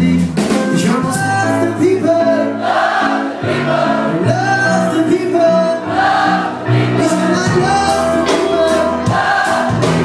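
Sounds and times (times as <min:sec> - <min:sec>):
held bass notes: 0:00.0 - 0:10.0
live pop band playing: 0:00.0 - 0:10.0
voices singing: 0:02.2 - 0:10.0
drum and cymbal hits: 0:07.4 - 0:10.0.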